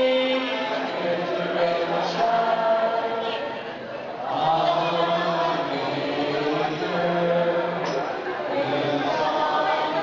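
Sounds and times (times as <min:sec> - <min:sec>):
choir singing a hymn: 0:00.0 - 0:03.5, 0:04.2 - 0:10.0.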